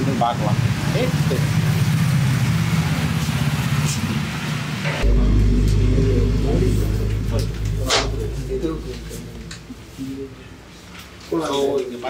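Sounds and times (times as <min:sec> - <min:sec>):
vehicle engine running: 0:05.0 - 0:10.0
steady low hum: 0:05.0 - 0:10.7.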